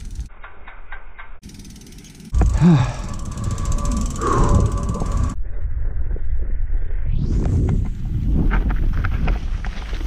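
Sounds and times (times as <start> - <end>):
bicycle freewheel hub ticking: 0.0 - 5.4.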